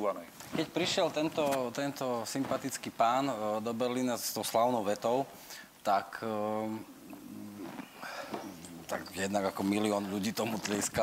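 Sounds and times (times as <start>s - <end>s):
man murmuring quietly: 6.5s - 11.0s.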